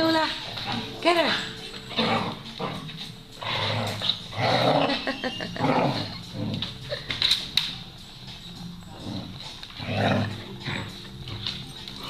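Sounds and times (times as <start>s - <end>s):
dogs scuffling: 0.0s - 12.0s
dogs growling: 0.4s - 12.0s.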